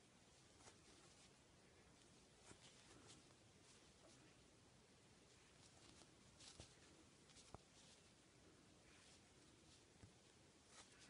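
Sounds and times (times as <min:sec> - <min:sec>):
yarn rustling: 0:00.0 - 0:11.0.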